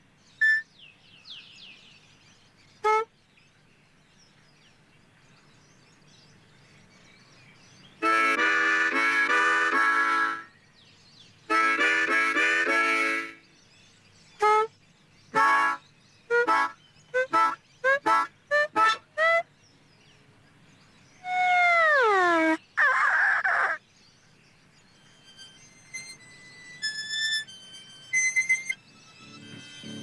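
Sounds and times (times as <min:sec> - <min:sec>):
harmonica playing: 0:08.0 - 0:10.5, 0:11.5 - 0:13.4, 0:14.4 - 0:14.7, 0:15.4 - 0:19.4, 0:25.0 - 0:30.0.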